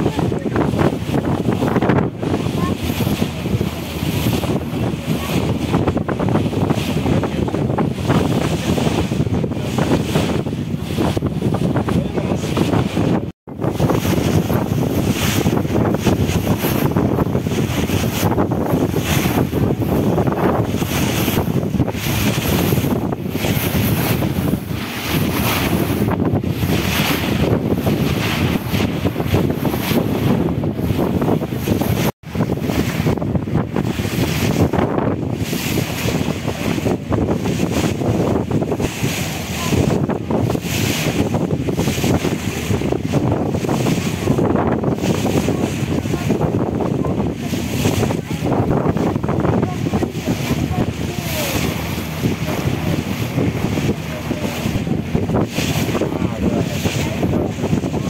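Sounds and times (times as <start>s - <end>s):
rush of sea water: 0.0s - 58.0s
wind buffeting microphone: 0.0s - 58.0s.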